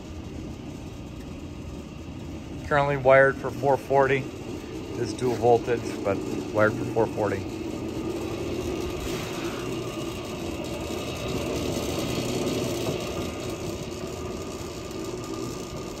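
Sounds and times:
motor and gear drive humming: 0.0s - 16.0s.

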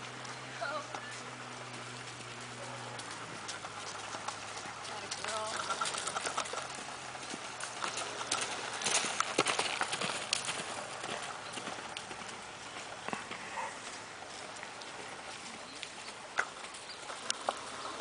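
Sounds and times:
hooves on dry dirt: 0.0s - 18.0s.

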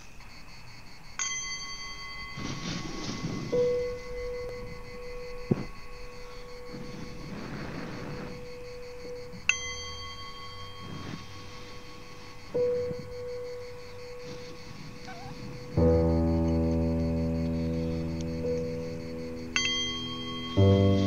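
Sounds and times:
bell-like chime ringing: 0.0s - 21.0s
soft swells of noise: 0.0s - 21.0s
steady held tone: 0.0s - 21.0s.

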